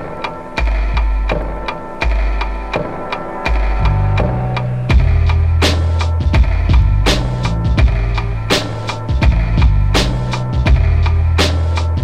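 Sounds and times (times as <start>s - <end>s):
hip hop drum loop: 0.0s - 12.0s
sustained synth tones: 2.1s - 7.1s
bass line: 2.1s - 12.0s.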